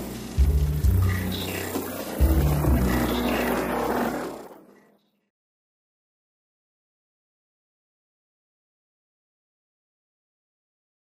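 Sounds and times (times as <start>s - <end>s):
electronic music with low drone: 0.0s - 4.8s.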